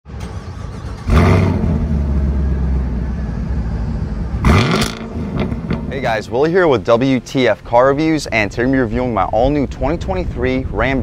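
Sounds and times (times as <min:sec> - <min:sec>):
car engine revving: 0:00.1 - 0:06.3.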